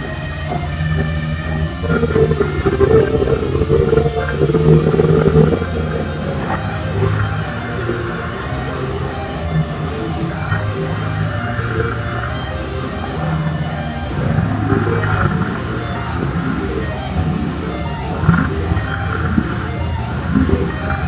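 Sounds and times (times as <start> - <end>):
electric guitar metal solo: 0.0 - 21.0.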